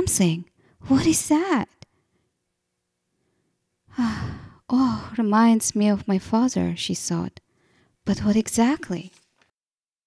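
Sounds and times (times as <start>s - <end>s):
woman speaking: 0.0s - 1.8s, 4.0s - 7.4s, 8.1s - 9.2s
woman sighing: 3.9s - 5.2s.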